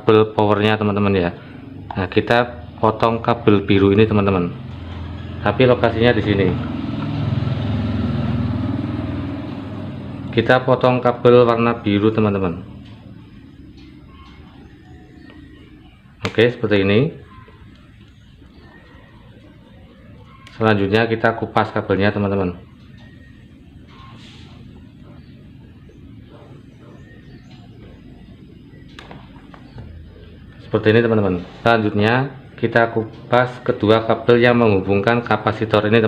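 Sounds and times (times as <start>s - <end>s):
low background hum: 0.0s - 36.0s.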